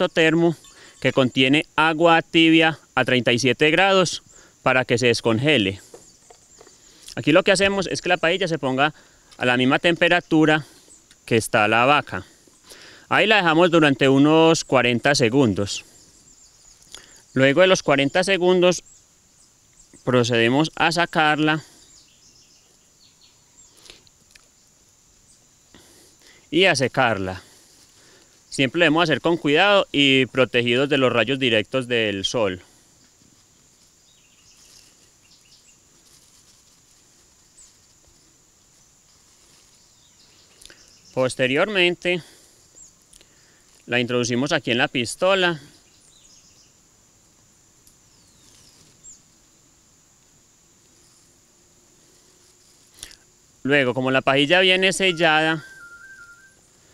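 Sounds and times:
high-pitched insect drone: 0.0s - 56.9s
descending bird chirps: 54.7s - 56.7s.

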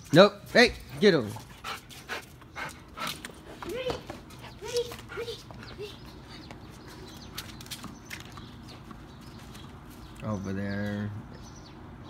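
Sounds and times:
light footsteps and scuffs: 0.0s - 10.3s
low background hum: 0.0s - 12.0s.

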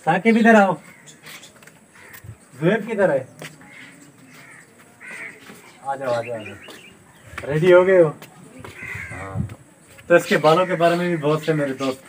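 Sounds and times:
crows cawing faintly: 0.3s - 12.0s.

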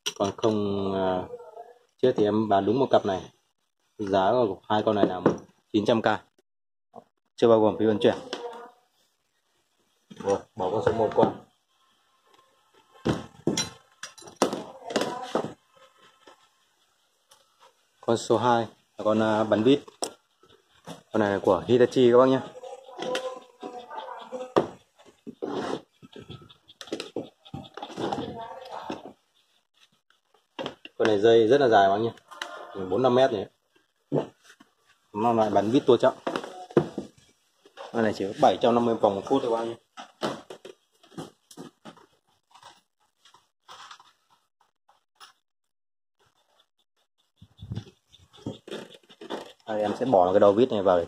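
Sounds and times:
tool handling clicks and rustles: 13.4s - 14.6s, 40.0s - 44.4s.

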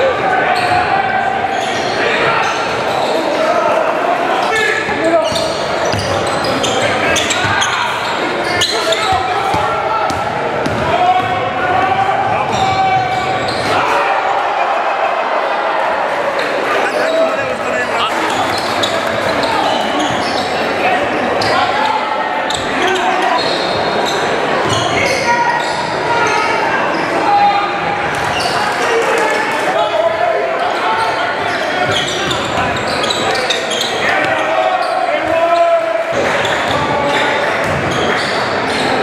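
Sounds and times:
echoing voices of players and spectators: 0.0s - 39.0s
basketball bouncing on hardwood court: 9.5s - 11.3s.

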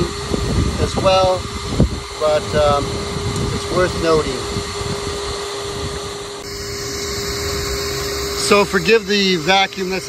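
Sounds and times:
vacuum motor humming: 0.0s - 10.0s.

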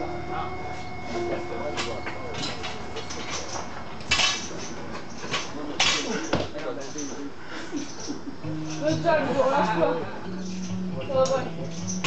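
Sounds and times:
faint voices: 0.0s - 11.7s.

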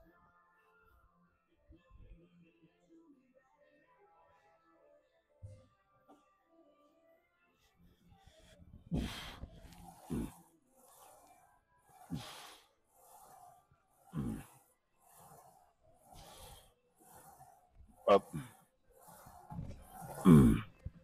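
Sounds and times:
man breathing hard: 12.0s - 12.7s.

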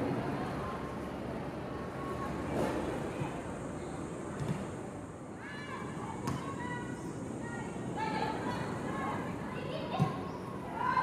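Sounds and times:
open-air background noise: 0.0s - 11.0s
women shouting on football pitch: 5.4s - 11.0s.

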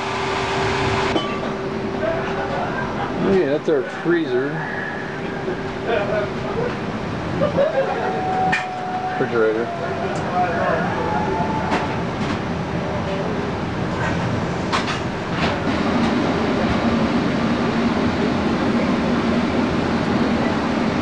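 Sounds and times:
machinery and ventilation rumble: 0.0s - 21.0s
steady low hum: 0.0s - 21.0s.

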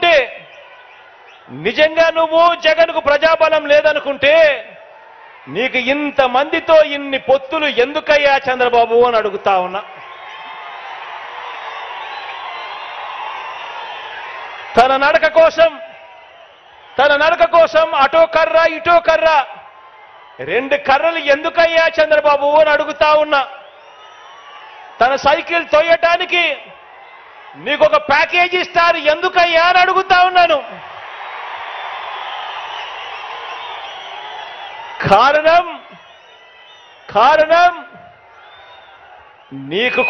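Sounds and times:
crowd shouting and cheering: 0.0s - 40.0s.

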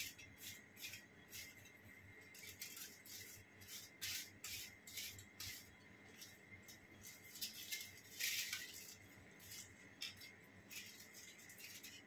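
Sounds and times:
aluminium foil crinkling: 0.0s - 12.0s.

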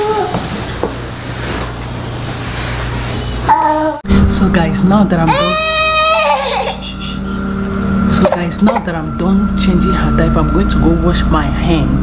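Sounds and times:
baby squealing: 5.3s - 7.0s.

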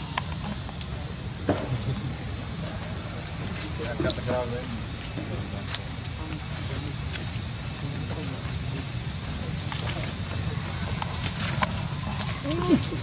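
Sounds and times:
faint human voices: 0.0s - 13.0s.

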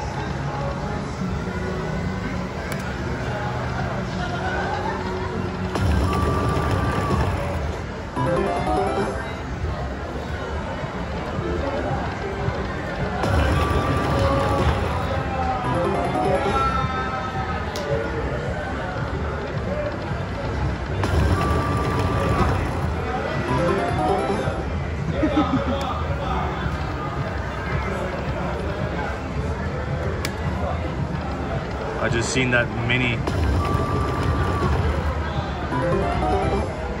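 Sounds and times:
slot machine game music and chimes: 5.7s - 9.6s, 13.2s - 17.1s, 21.0s - 24.8s, 33.2s - 37.0s.

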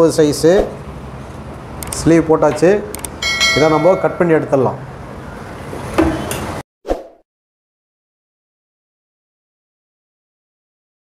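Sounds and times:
sharp knock on worktable: 6.0s - 6.3s.

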